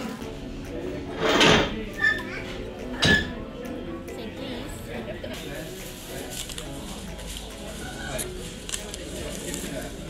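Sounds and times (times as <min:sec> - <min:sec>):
background music: 0:00.0 - 0:10.0
murmur of voices: 0:00.0 - 0:10.0.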